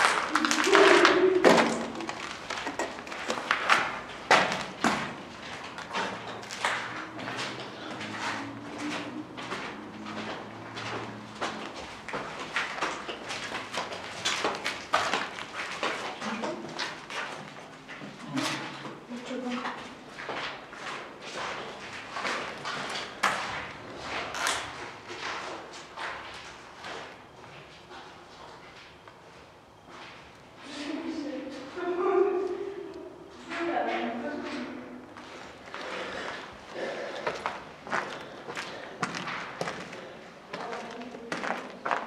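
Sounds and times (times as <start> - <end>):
indistinct voices: 0.0 - 2.8
footsteps on gritty floor: 0.0 - 31.8, 33.3 - 42.0.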